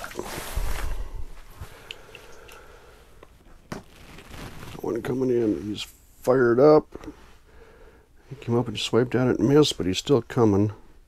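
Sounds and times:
clothing rustle: 0.0 - 1.8, 3.4 - 5.8.

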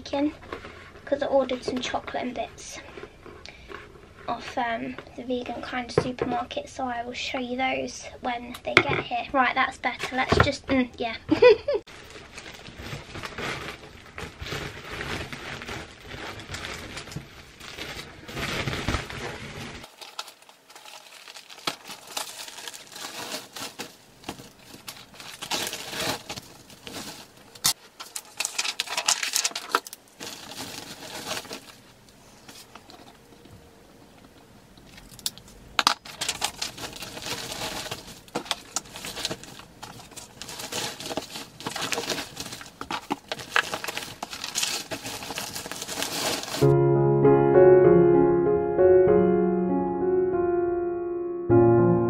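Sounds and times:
plastic sack crinkling and rustling: 11.9 - 33.5, 34.8 - 46.7.

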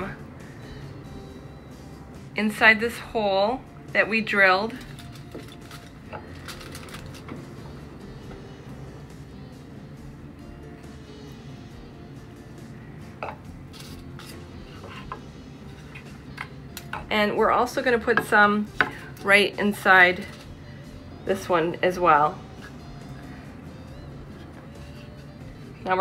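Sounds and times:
quiet background music: 0.0 - 26.0.

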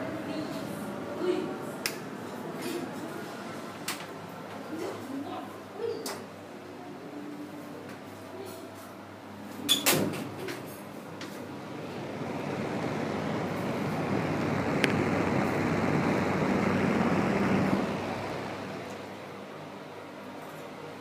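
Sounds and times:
exhaust fan rushing air: 11.0 - 20.3.

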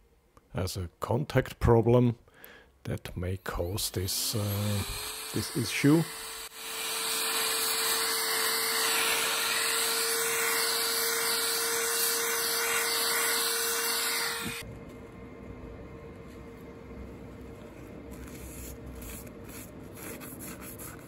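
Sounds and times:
motor whine: 4.2 - 14.7.

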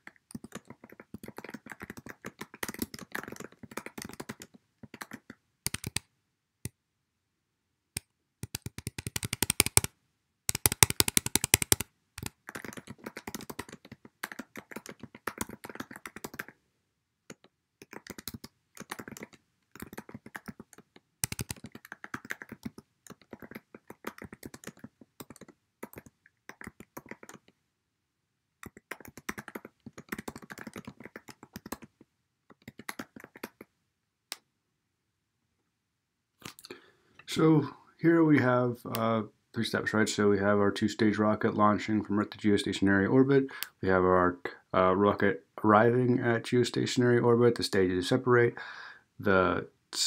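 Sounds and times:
typing on computer keyboard: 0.0 - 6.0, 8.4 - 9.9, 10.5 - 16.6, 17.3 - 27.5, 28.6 - 33.7.

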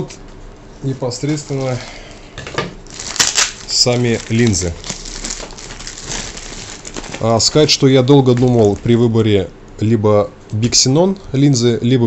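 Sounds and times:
plastic packaging crinkling: 2.8 - 9.2.

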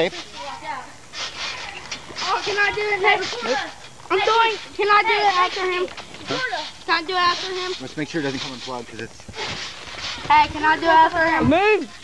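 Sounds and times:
young men talking: 0.0 - 12.0.

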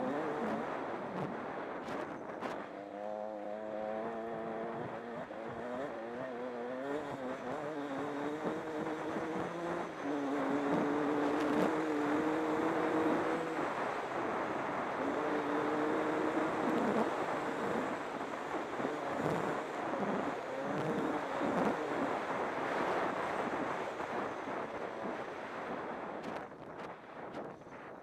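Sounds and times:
motorcycle engine revving: 0.0 - 26.3.

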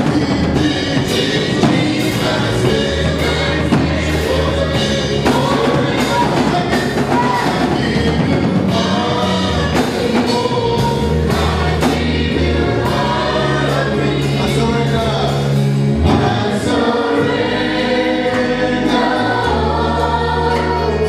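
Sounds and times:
drum hits: 0.0 - 15.0
church choir singing gospel: 0.0 - 21.0
sustained bass notes: 0.0 - 21.0.

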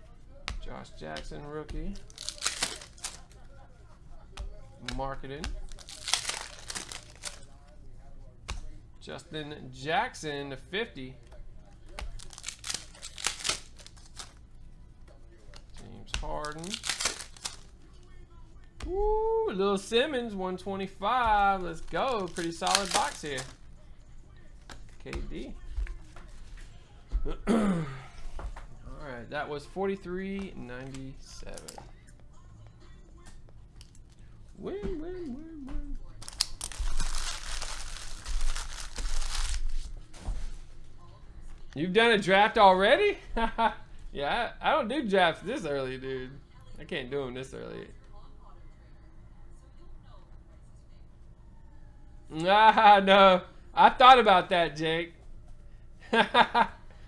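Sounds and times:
foil wrapper crinkling: 1.9 - 3.4, 5.5 - 7.6, 12.0 - 14.4, 16.2 - 17.7, 21.4 - 23.6, 36.1 - 40.0.

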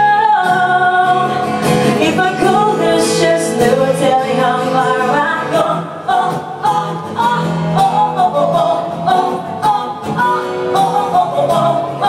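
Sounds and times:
acoustic guitar: 0.0 - 12.0
person singing into a microphone: 0.0 - 12.0.

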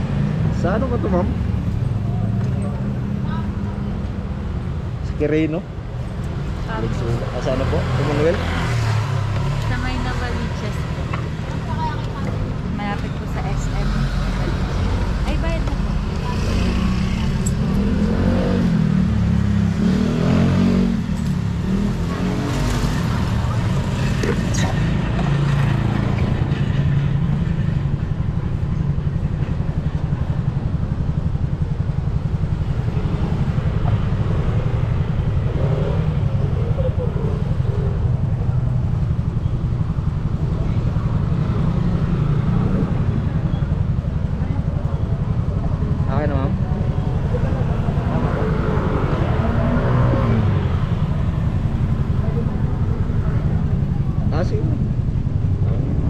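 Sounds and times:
voices talking: 0.1 - 56.0.

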